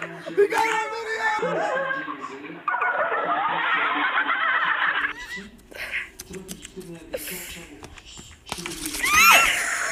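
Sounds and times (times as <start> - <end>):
people shrieking with laughter: 9.0 - 9.9.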